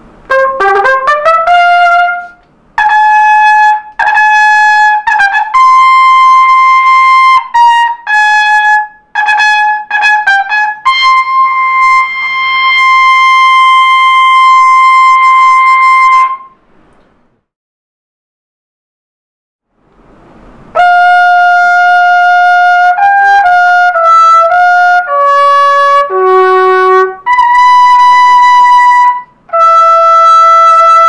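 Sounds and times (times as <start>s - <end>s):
trumpet notes: 0.0s - 16.6s, 20.5s - 31.0s.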